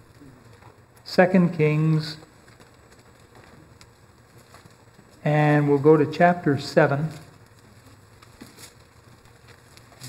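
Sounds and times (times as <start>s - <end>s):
room hiss: 0.0s - 10.0s
thin pages being turned: 2.2s - 5.2s, 7.1s - 10.0s.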